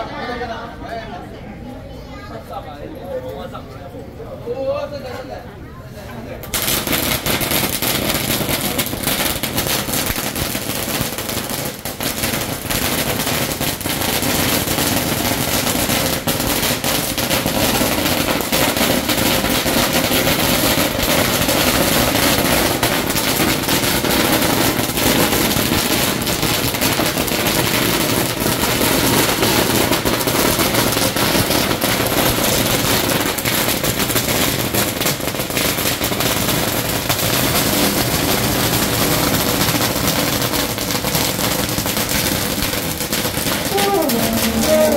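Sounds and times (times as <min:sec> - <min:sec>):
firecrackers crackling: 0:06.4 - 0:44.9.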